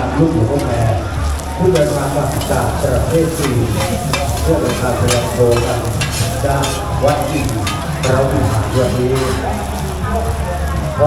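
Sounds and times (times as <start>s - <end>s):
batter sizzling: 0.0s - 11.0s
metal spatulas scraping iron pan: 1.7s - 9.8s.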